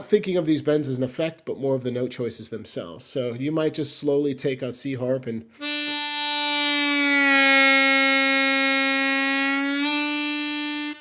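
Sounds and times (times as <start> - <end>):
harmonica bending a held note: 5.6 - 11.0.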